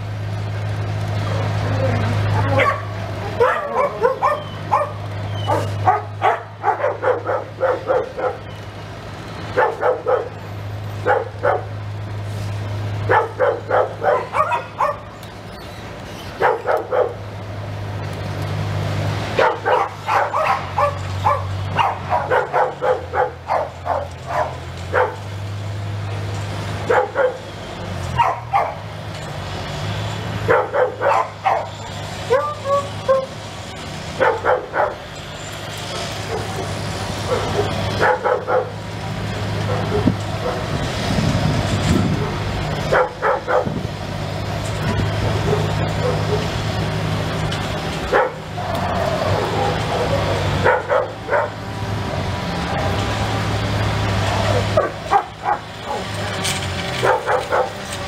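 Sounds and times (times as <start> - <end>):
dog barking: 2.4 - 8.5, 9.6 - 10.4, 11.0 - 11.7, 13.1 - 15.1, 16.4 - 17.2, 19.4 - 25.3, 26.9 - 27.4, 28.2 - 28.8, 30.5 - 33.3, 34.2 - 35.0, 37.3 - 38.8, 39.7 - 40.7, 42.2 - 43.8, 45.4 - 46.5, 48.1 - 48.4, 49.3 - 51.6, 54.8 - 56.1, 57.0 - 57.8.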